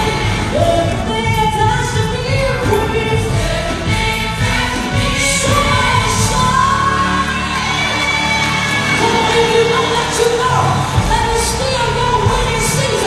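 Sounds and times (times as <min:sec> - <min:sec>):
band playing: 0:00.0 - 0:13.0
woman singing gospel: 0:00.0 - 0:13.0.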